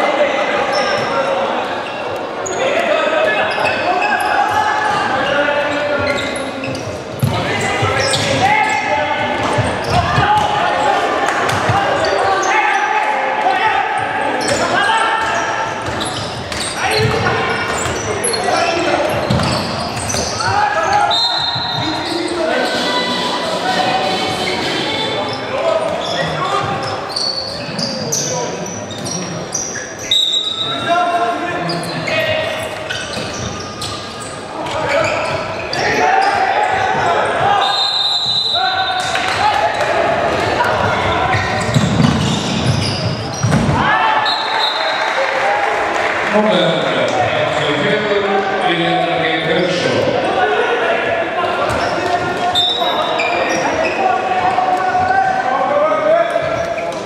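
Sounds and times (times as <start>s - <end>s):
players and spectators shouting: 0.0s - 57.0s
ball bouncing on wooden court: 19.2s - 20.3s, 40.9s - 43.8s.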